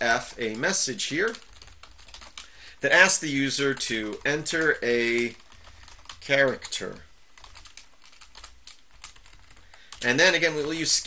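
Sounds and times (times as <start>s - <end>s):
keyboard typing: 0.2s - 11.0s.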